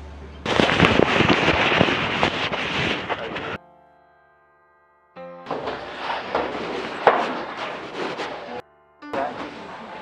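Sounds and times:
microphone being jostled: 0.5 - 3.6.

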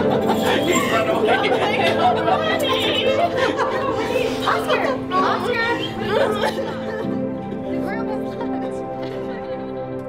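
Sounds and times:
people chattering excitedly: 0.0 - 9.5
soft background music: 0.0 - 10.0.

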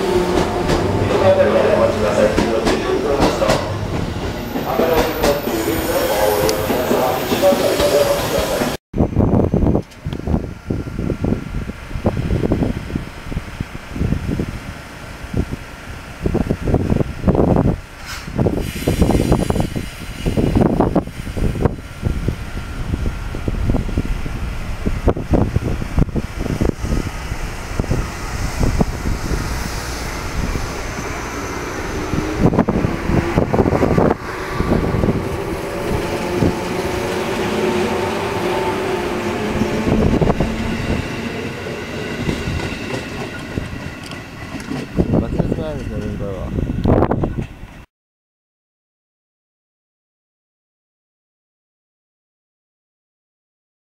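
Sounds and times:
train motor whine: 18.5 - 45.1.

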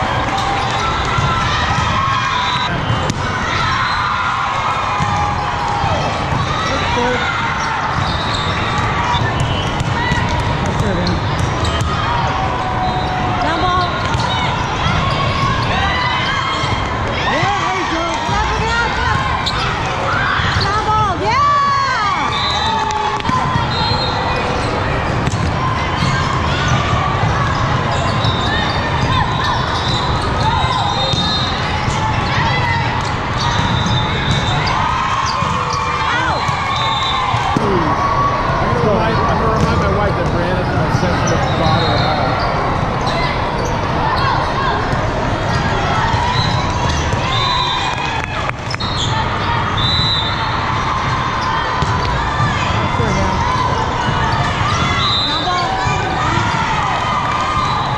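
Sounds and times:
voices calling and chattering: 0.0 - 57.9
volleyballs struck and bouncing: 0.2 - 3.7, 7.8 - 12.6, 22.8 - 23.7, 24.3 - 38.0, 39.5 - 40.5, 50.7 - 57.5.

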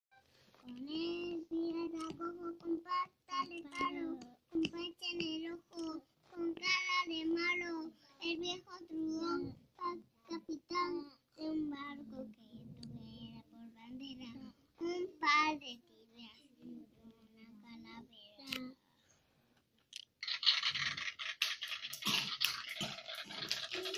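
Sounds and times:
child singing: 0.7 - 18.8.

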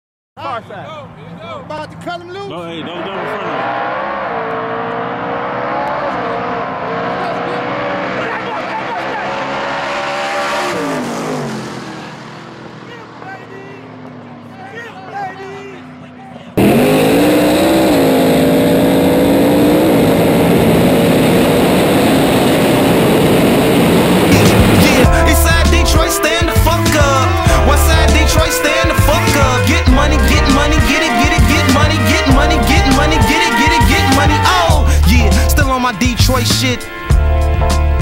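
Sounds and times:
racing car engines revving: 1.0 - 38.0
loud steady sound: 16.6 - 35.4.

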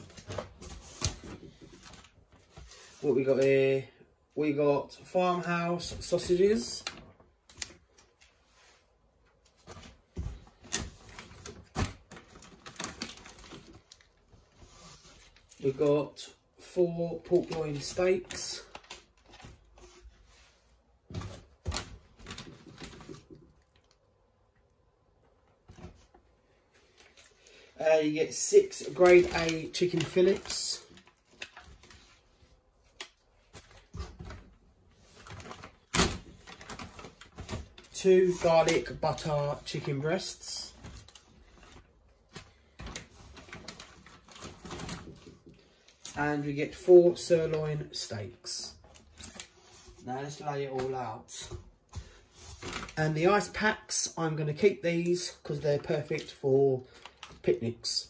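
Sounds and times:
foil and plastic crinkling: 10.6 - 14.3, 21.6 - 24.0, 28.3 - 32.2, 35.1 - 46.2.

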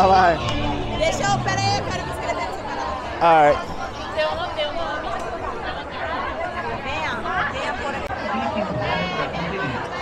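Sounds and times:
woman and man conversing: 0.0 - 9.9
crowd chatter: 0.0 - 10.0.

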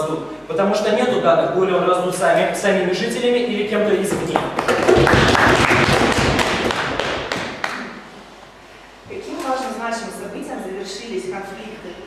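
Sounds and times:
flurry of quick taps and knocks: 4.1 - 7.6.

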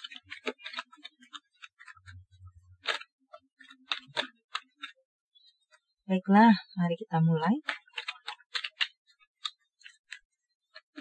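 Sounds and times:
cards being shuffled: 0.0 - 5.0, 7.6 - 11.0.

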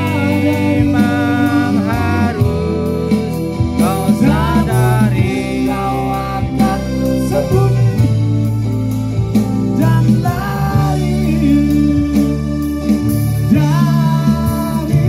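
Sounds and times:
man singing into microphone: 0.0 - 8.6, 9.6 - 15.0
drums: 0.0 - 15.0
guitar: 0.0 - 15.0
keyboard: 0.0 - 15.0.

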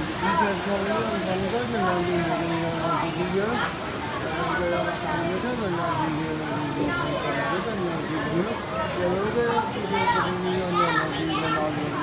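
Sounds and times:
chatter of children and adults: 0.0 - 12.0.

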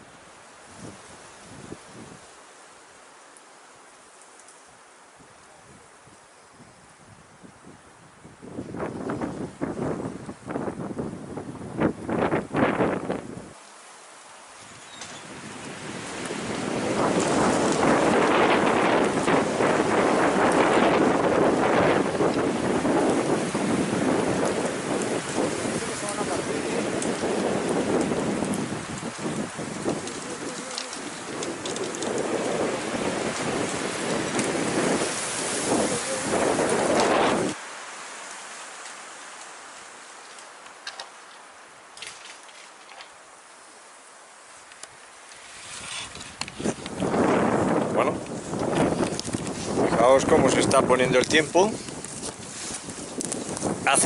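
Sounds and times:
strong wind gusting: 0.0 - 2.4, 5.2 - 13.6, 14.6 - 37.9, 44.9 - 54.0
faint hiss: 0.0 - 54.0.

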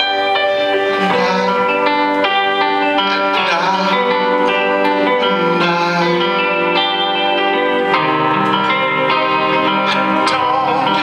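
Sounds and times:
guitar notes: 0.0 - 11.0
sustained chords: 0.0 - 11.0
wavering sliding melodic line: 0.0 - 11.0.

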